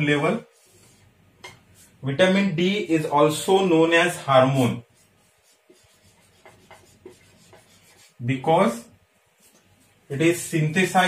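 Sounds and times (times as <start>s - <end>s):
marker scratching on whiteboard: 0.4s - 1.1s, 4.2s - 8.2s.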